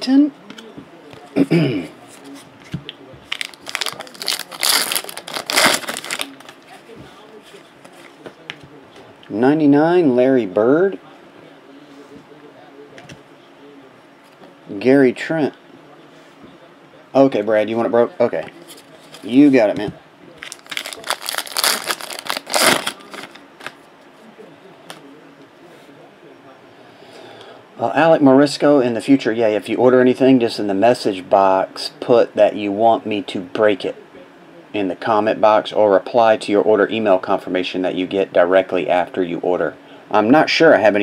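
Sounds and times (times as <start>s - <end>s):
foil wrapper crinkling: 3.3s - 6.6s, 20.4s - 23.8s.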